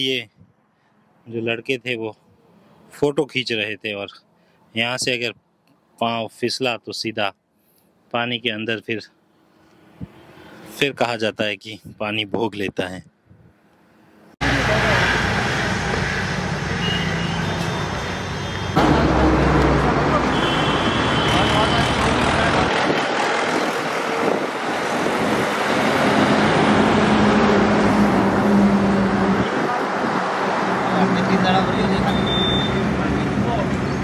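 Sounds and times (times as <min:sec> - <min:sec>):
passing road traffic: 0:00.0 - 0:01.3, 0:02.2 - 0:03.1, 0:09.0 - 0:11.0, 0:13.1 - 0:34.0.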